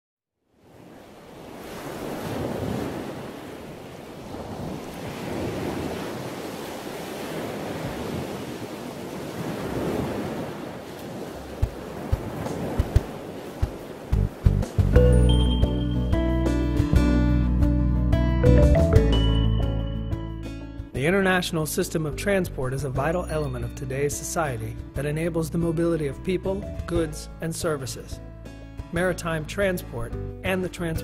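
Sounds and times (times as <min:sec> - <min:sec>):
sea waves washing: 0:00.6 - 0:17.1.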